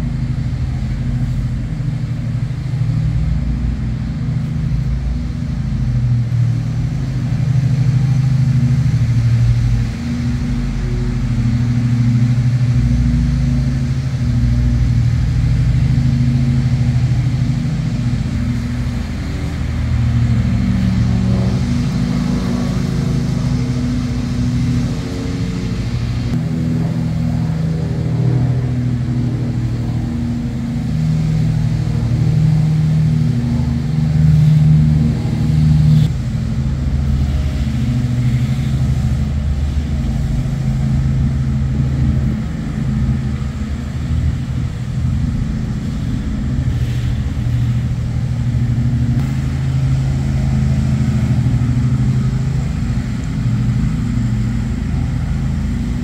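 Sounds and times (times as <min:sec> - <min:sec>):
low engine hum: 0:00.0 - 0:56.0.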